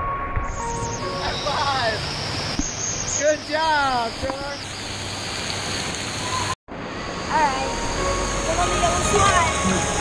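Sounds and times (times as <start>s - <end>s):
water rushing and splashing: 0.6s - 10.0s.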